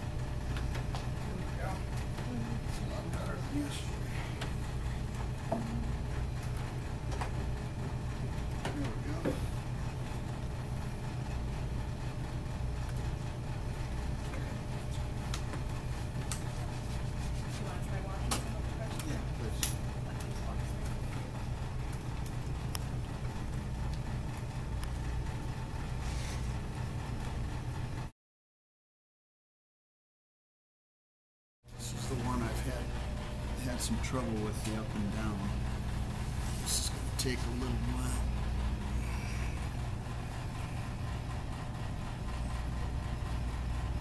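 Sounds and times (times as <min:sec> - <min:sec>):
steady low hum: 0:00.0 - 0:28.1, 0:31.7 - 0:44.0.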